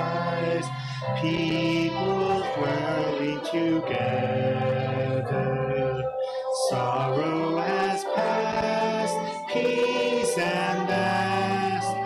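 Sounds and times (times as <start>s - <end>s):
congregation singing a hymn: 0.0s - 12.0s
instrumental accompaniment: 0.0s - 12.0s.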